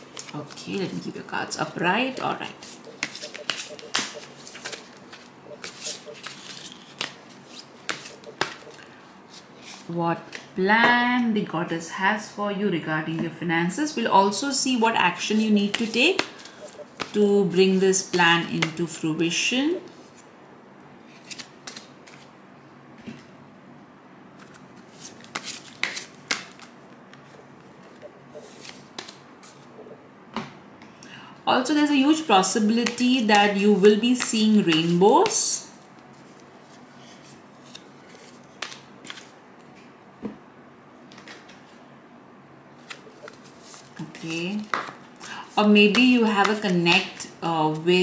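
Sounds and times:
cards being shuffled: 0.1 - 1.0, 2.6 - 10.5, 15.2 - 17.2, 21.1 - 22.3, 24.4 - 29.7, 32.8 - 35.4, 36.1 - 39.7, 41.1 - 41.8, 42.8 - 45.0.

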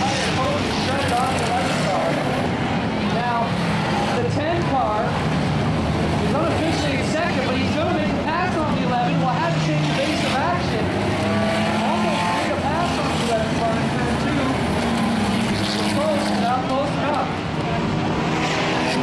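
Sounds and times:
race car engines passing: 0.0 - 19.0.

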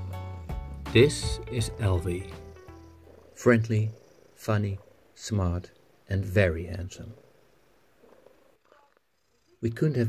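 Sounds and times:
cat purring: 0.0 - 10.0.

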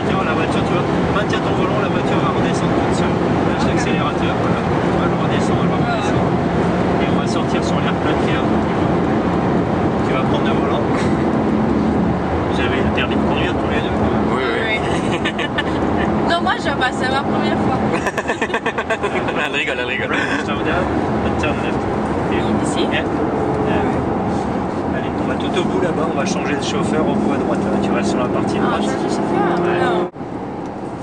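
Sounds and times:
car engine drone from cabin: 0.0 - 31.0
road noise: 0.0 - 31.0.

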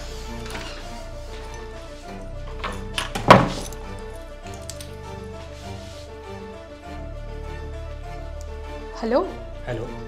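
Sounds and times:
background music: 0.0 - 10.0
door shutting with thunk: 3.0 - 3.7.

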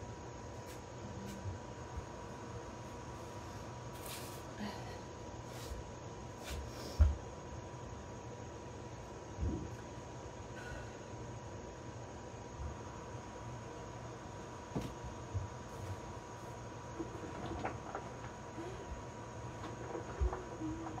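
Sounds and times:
room noise: 0.0 - 21.0
faint steady tone: 6.8 - 17.2.

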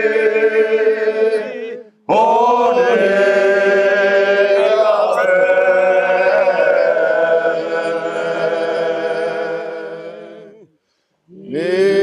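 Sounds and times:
men chanting a cappella: 0.0 - 10.7, 11.3 - 12.0.

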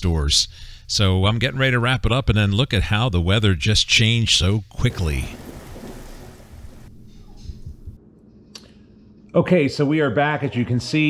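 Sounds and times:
rain hiss: 5.0 - 6.9.

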